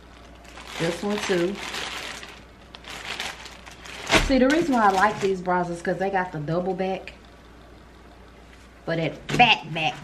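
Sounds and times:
plastic bag crinkling: 0:00.0 - 0:05.7.

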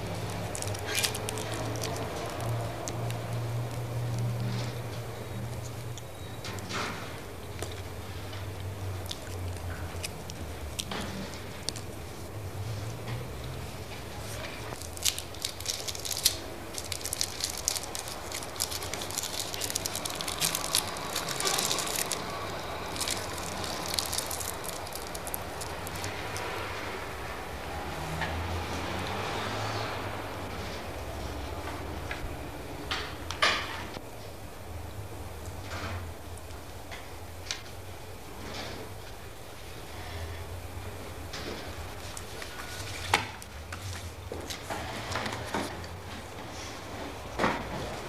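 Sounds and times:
crackling and clicking surface noise: 0:00.0 - 0:06.9, 0:13.9 - 0:26.5
low mains hum: 0:00.0 - 0:48.0.

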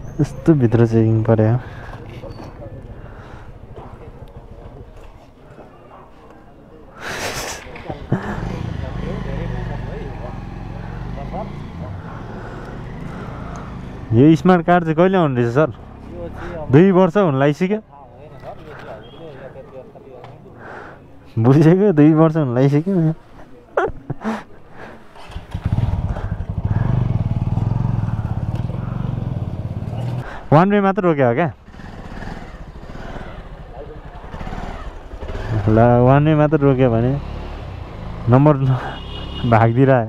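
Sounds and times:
faint voices: 0:17.8 - 0:21.5
motorcycle engine idling: 0:25.2 - 0:30.2, 0:31.6 - 0:36.3.

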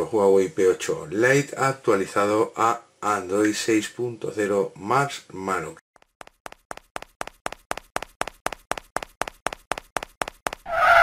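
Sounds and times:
cartoon footstep taps: 0:06.0 - 0:10.7.

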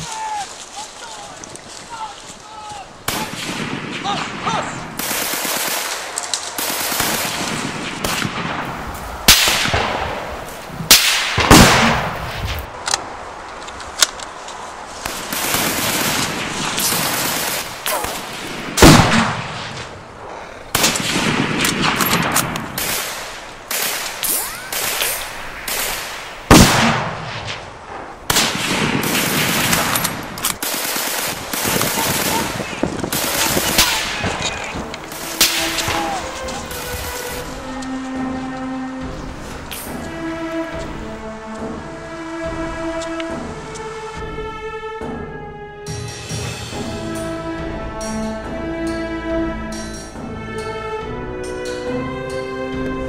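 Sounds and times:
single rifle shots: 0:03.1 - 0:13.0, 0:15.0 - 0:20.0, 0:20.7 - 0:37.3
automatic gunfire: 0:05.0 - 0:08.6, 0:15.1 - 0:19.9, 0:20.8 - 0:27.6, 0:28.3 - 0:34.5
music with sustained tones: 0:35.0 - 0:53.0.

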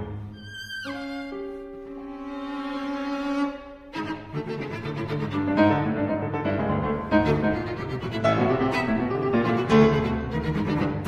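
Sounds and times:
cello: 0:00.0 - 0:11.0
piano: 0:00.0 - 0:11.0
violin: 0:00.0 - 0:11.0.

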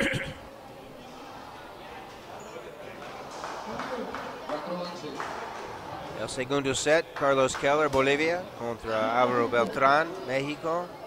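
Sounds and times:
faint echoing voices: 0:00.0 - 0:11.0.

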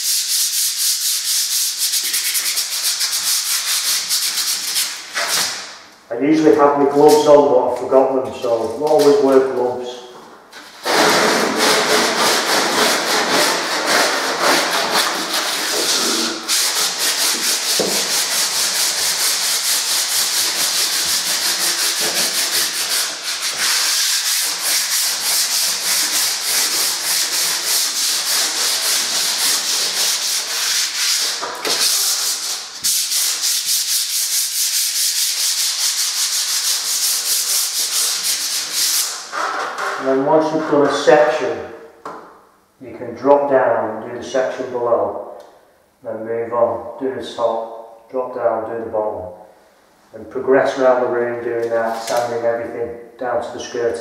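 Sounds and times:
sandpaper sanding plaster wall: 0:00.0 - 0:05.8, 0:10.6 - 0:39.8, 0:50.7 - 0:52.4.

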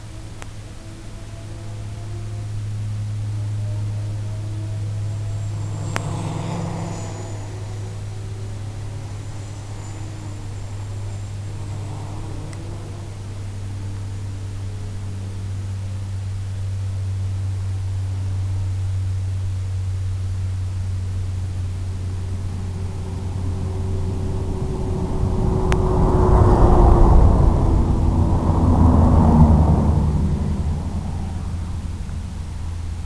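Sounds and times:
drone motors whirring: 0:00.0 - 0:18.5
low hum: 0:00.0 - 0:33.0
wind noise: 0:04.8 - 0:33.0.

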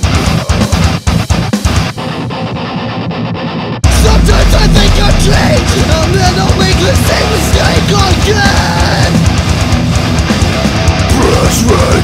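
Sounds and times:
drums: 0:00.0 - 0:12.0
heavy electric guitars: 0:00.0 - 0:12.0.

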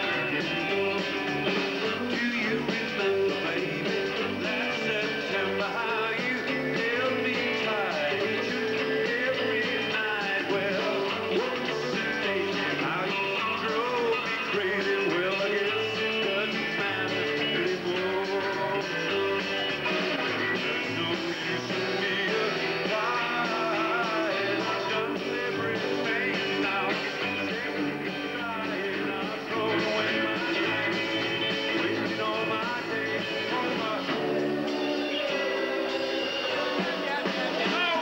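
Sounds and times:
rock band playing live: 0:00.0 - 0:38.0.

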